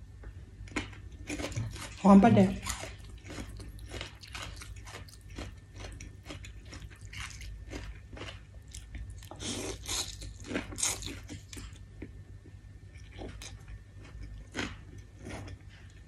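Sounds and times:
wet chewing: 2.6s - 11.8s.

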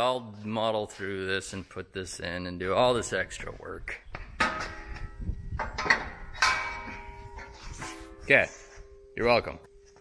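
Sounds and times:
metal knocks and clanks: 4.2s - 8.4s.

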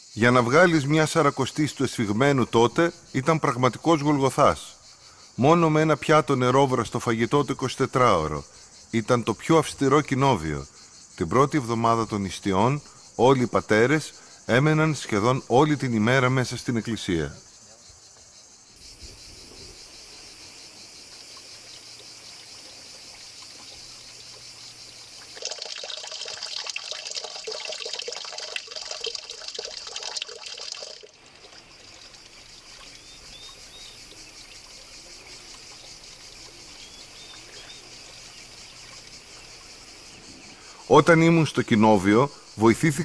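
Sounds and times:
high drone of insects: 0.0s - 43.0s
water splashing onto stone: 23.2s - 36.5s
bird chirps: 32.9s - 39.5s.

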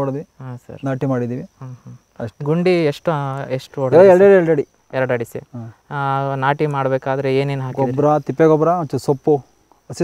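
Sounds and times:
high-pitched insect trill: 0.0s - 10.0s
man speaking: 0.0s - 10.0s.

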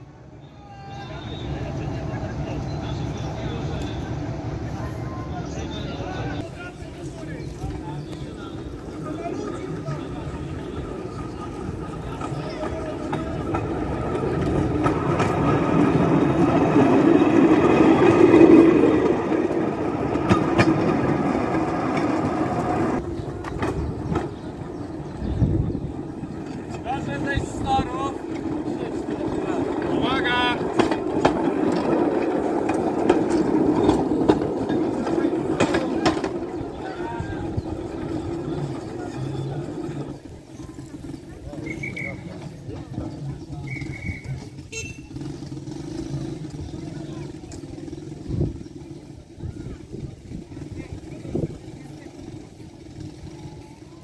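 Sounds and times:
crowd chatter: 0.0s - 54.0s
rail vehicle engine running: 0.0s - 54.0s.

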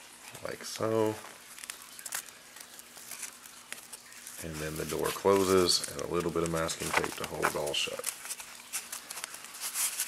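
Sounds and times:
crinkling and rustling: 0.0s - 10.0s
sharp crackles: 0.8s - 10.0s.

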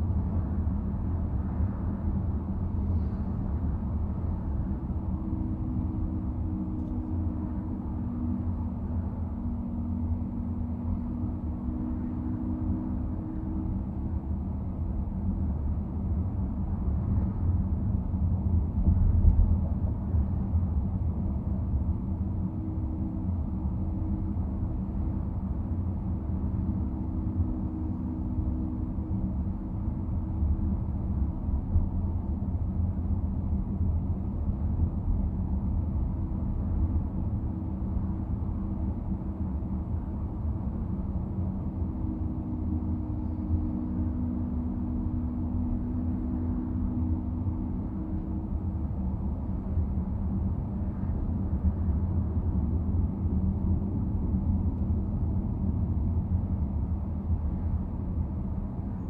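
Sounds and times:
car road and engine rumble: 0.0s - 59.0s
faint hum: 0.0s - 59.0s.

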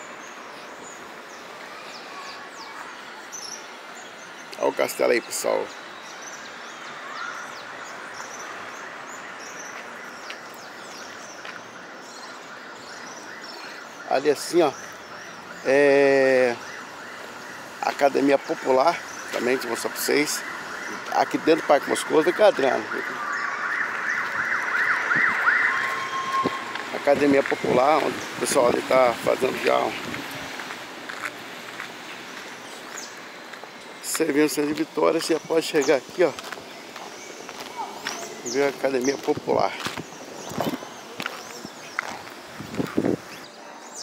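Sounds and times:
small birds chirping: 0.0s - 44.0s
electronic siren yelping: 19.9s - 28.0s
steady background hiss: 25.4s - 44.0s.

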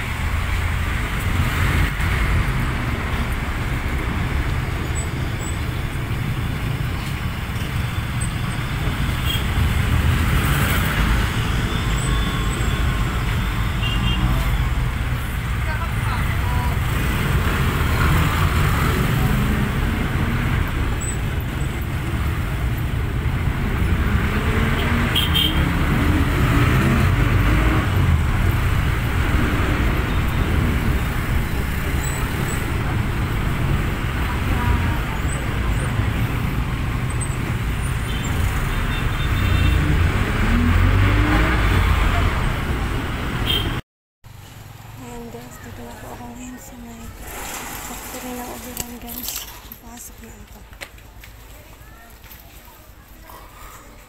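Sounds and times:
engine and tyre rumble: 0.0s - 54.0s.

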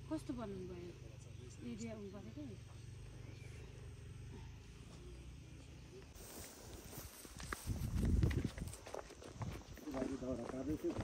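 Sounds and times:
footsteps on dirt path: 6.1s - 11.0s.

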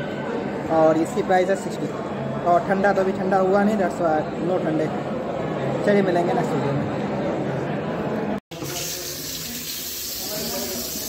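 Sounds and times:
tap water running into sink: 8.5s - 11.0s.

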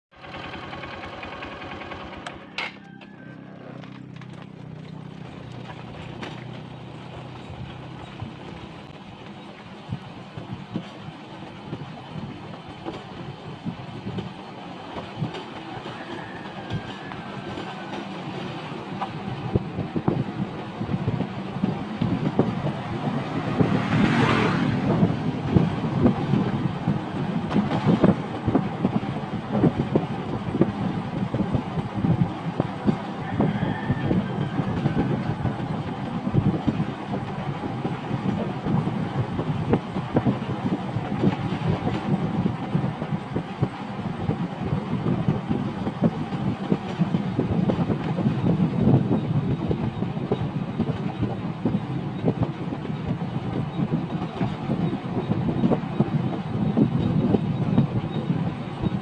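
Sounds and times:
vehicle engine running: 0.1s - 10.8s, 18.8s - 47.6s
rumbling road noise: 0.2s - 59.0s
wind noise rush: 7.5s - 59.0s.

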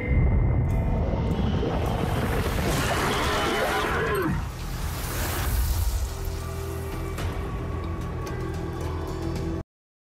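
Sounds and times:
dark background music: 0.0s - 9.6s.

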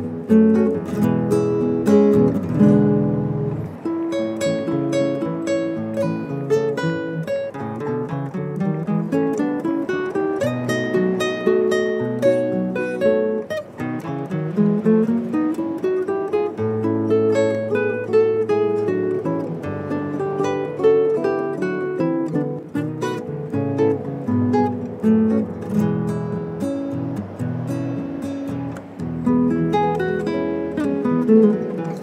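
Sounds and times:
classical guitar duet: 0.0s - 32.0s.

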